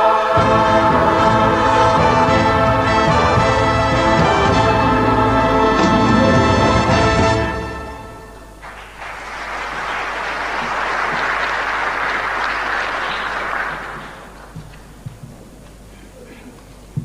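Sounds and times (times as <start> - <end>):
audience applause: 8.6 - 15.0.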